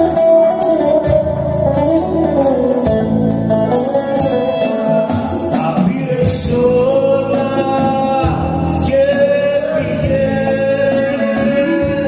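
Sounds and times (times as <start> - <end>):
keyboard: 0.0 - 12.0
plucked lute: 0.0 - 12.0.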